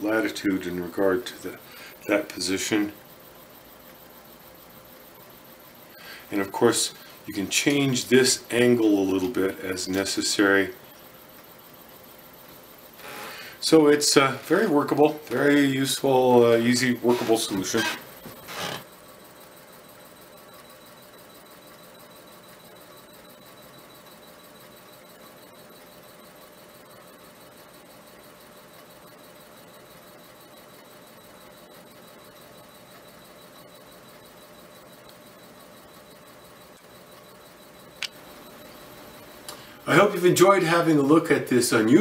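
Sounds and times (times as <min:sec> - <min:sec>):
sharp click: 0:38.0 - 0:38.2.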